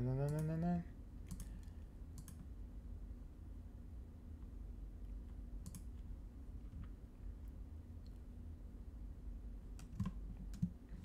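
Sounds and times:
faint low hum: 0.0 - 11.0
computer mouse clicking: 1.3 - 2.5, 5.6 - 6.1, 9.7 - 10.8.

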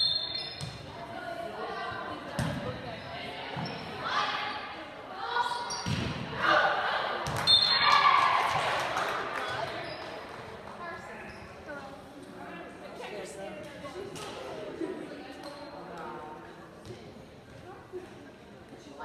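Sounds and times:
volleyball hits echoing: 5.8 - 9.7
spectators cheering and shouting: 6.4 - 9.3
referee's whistle: 7.4 - 7.9.

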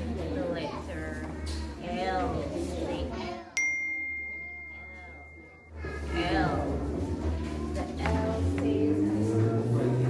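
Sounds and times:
high clear ding: 3.6 - 5.8.

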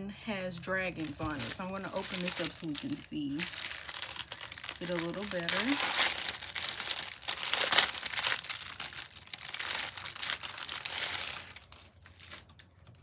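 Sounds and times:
plastic bag crinkling: 0.6 - 13.0.

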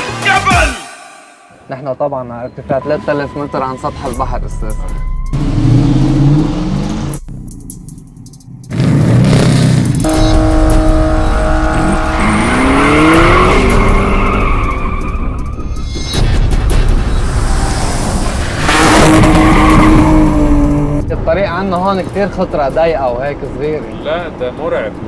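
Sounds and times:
background music: 0.0 - 8.5
car engine revving: 5.3 - 21.4.

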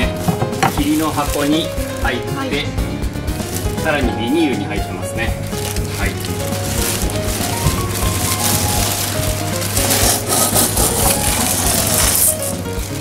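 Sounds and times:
plastic bag crinkling: 0.0 - 2.7, 3.3 - 13.0
coffee beans rattling in metal bowl: 6.7 - 12.7.

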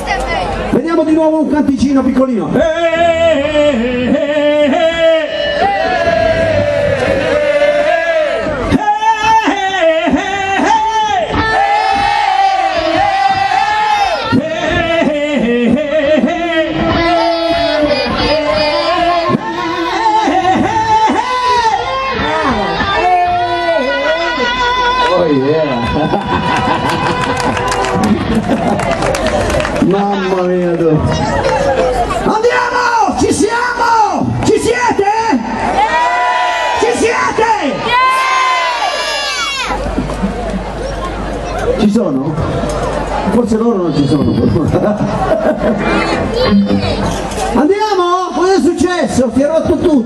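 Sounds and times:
crowd voices: 0.0 - 50.0
man singing into a microphone: 2.5 - 6.6, 8.6 - 11.6, 14.2 - 25.5.

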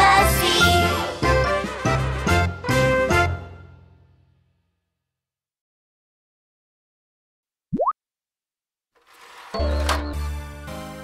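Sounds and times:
cartoon bloop rising in pitch: 7.8 - 8.0.

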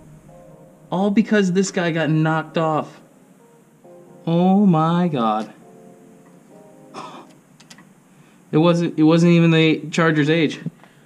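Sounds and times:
faint steady tone: 0.0 - 9.0.

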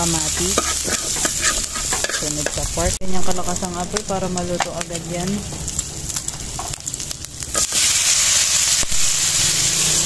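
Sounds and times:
meat sizzling in a wok: 0.0 - 10.0.

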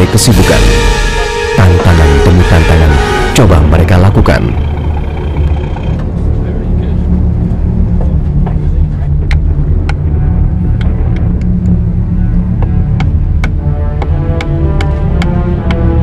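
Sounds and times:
loud low rumble: 0.0 - 13.8
faint background music: 0.0 - 16.0.

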